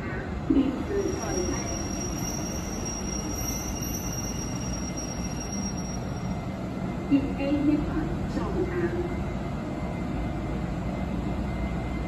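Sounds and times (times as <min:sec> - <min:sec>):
train rumbling: 0:00.0 - 0:12.0
high train squeal: 0:00.8 - 0:07.0.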